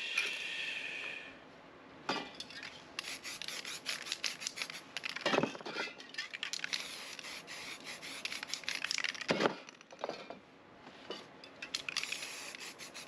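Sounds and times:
spray-paint can hissing: 3.0s - 5.2s, 6.6s - 9.3s, 11.8s - 13.0s.

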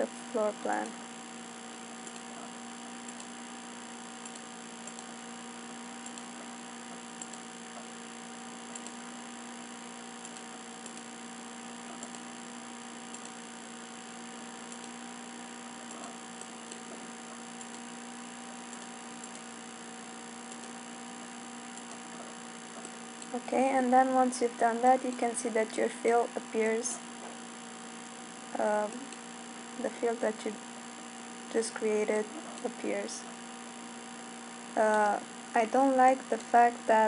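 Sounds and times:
electrical mains hum: 0.0s - 37.0s
mouse clicks: 21.7s - 23.3s.

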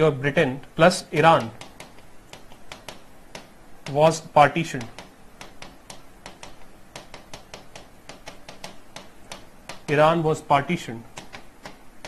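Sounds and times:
pen tapping on a screen: 1.0s - 10.2s, 11.0s - 12.0s.

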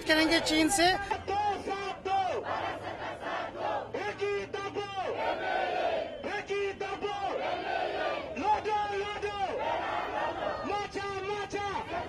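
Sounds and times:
crowd chanting slogans: 0.0s - 12.0s.

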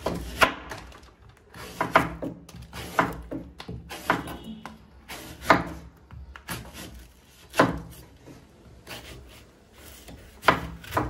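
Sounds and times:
knife cutting tough husk: 1.5s - 11.0s
knife scraping: 3.8s - 5.9s, 6.5s - 11.0s.

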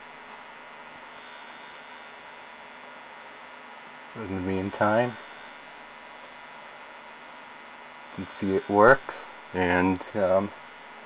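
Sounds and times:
television electrical hum and hiss: 0.0s - 11.0s
faint click: 1.6s - 1.9s.

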